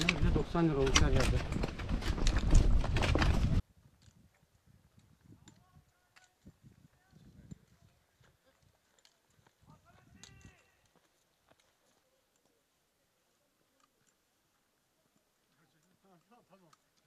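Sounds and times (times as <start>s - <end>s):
footsteps on rock: 0.0s - 3.6s, 5.5s - 12.0s
trekking poles clattering on rock: 0.0s - 4.2s, 7.4s - 12.5s.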